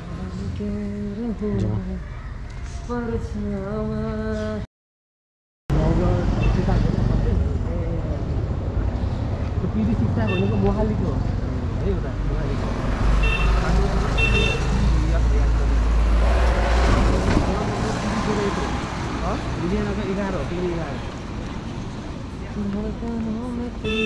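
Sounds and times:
traffic rumble: 0.0s - 4.6s, 5.7s - 24.0s
people talking: 1.4s - 2.0s.

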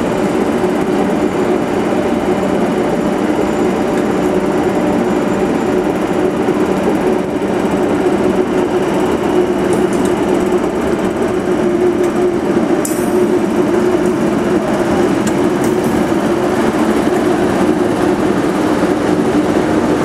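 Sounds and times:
electric locomotive hum: 0.0s - 20.0s.

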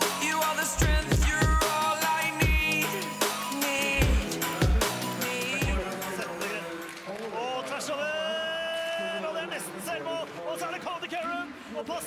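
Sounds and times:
electronic dance music: 0.0s - 8.4s
commentator speaking excitedly: 0.2s - 12.0s.

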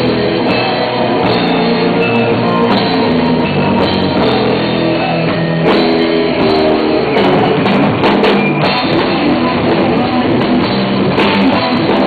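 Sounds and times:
drum kit: 0.0s - 12.0s
electric guitars: 0.0s - 12.0s.

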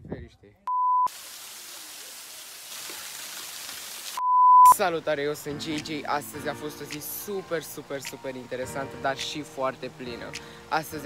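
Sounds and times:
waterfall splashing onto rocks: 1.1s - 4.2s.

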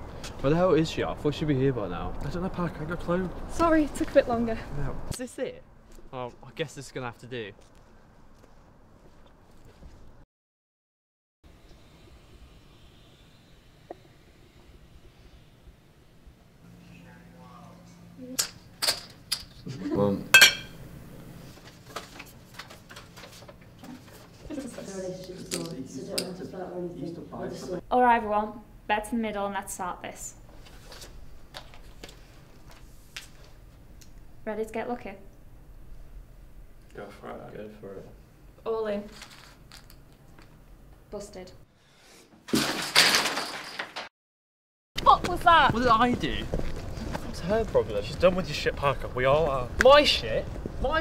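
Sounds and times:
glassy clink: 20.4s - 20.8s.

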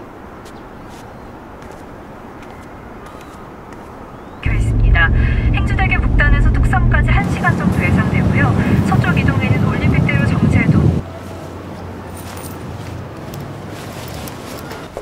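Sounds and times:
faint outdoor ambience: 0.0s - 15.0s
car engine and road hum: 4.4s - 11.0s
voices in a car: 4.4s - 11.0s.

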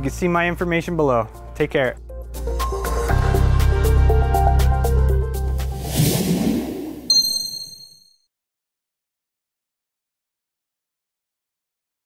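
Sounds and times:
background music: 0.0s - 6.8s
high-pitched ding: 7.1s - 8.2s.

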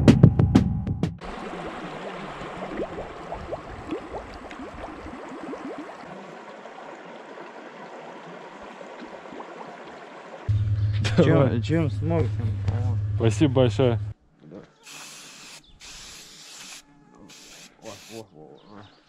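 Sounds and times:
stream rushing: 1.2s - 10.5s
bottle gurgling bubbles underwater: 1.3s - 6.3s
steady low hum: 10.5s - 14.2s.

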